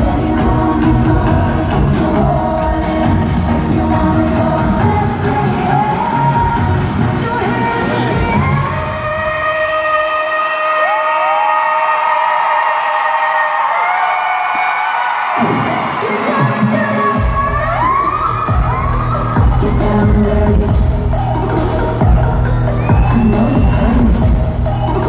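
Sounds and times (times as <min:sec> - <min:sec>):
live pop music over sound system: 0:00.0 - 0:25.0.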